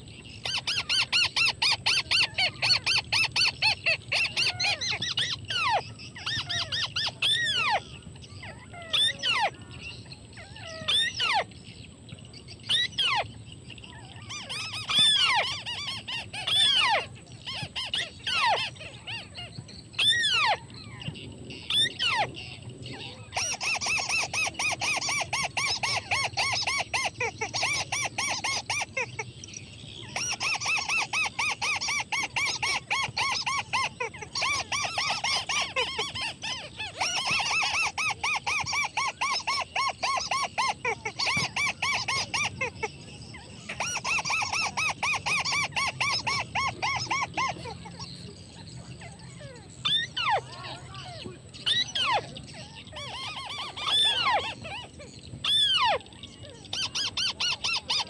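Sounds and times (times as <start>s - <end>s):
bird squealing calls: 0.0s - 11.8s, 12.6s - 58.0s
rapid chattering bird notes: 0.0s - 58.0s.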